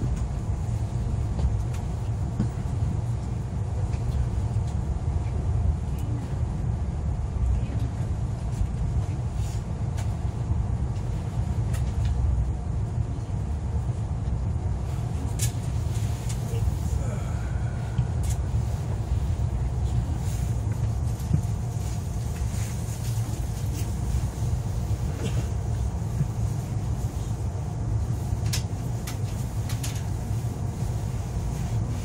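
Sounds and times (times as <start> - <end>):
train running gear rumbling: 0.0 - 32.0.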